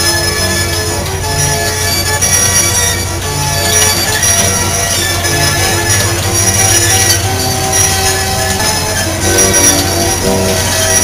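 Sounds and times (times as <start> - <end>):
carousel music: 0.0 - 11.0
low hum from ride: 0.0 - 11.0.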